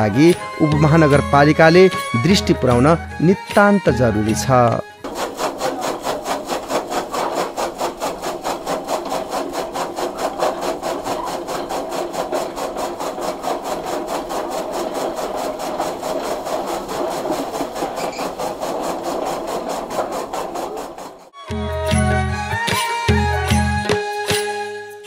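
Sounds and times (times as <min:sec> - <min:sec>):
chaff cutter chopping grass: 0:05.0 - 0:21.4.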